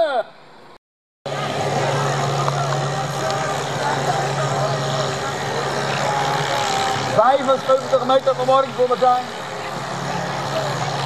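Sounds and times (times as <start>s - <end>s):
tractor engine under heavy load: 1.3s - 11.0s.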